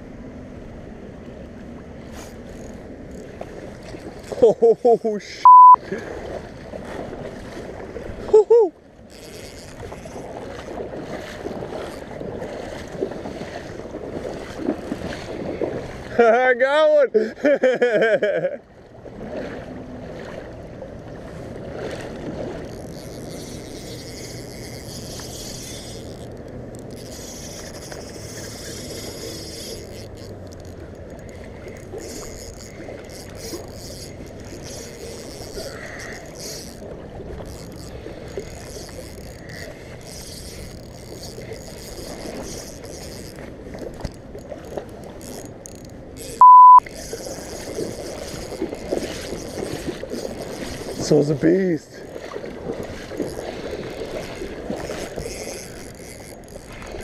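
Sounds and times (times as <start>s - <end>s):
censor bleep: 5.4s - 5.8s, 46.4s - 46.8s.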